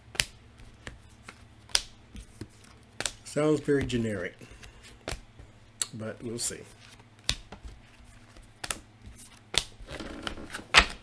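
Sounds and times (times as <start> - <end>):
cards clicking on cards: 0.1 - 4.0.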